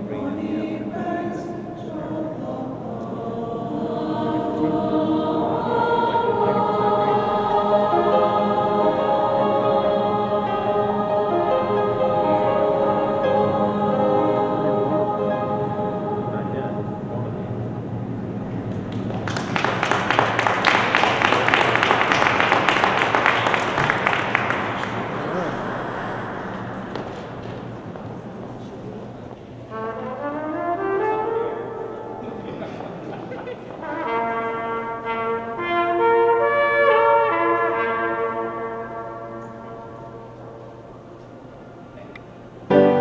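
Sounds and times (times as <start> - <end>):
other held notes: 0.0 - 18.8
audience applauding: 18.6 - 28.6
trumpet playing held notes: 29.7 - 32.3, 33.8 - 40.6.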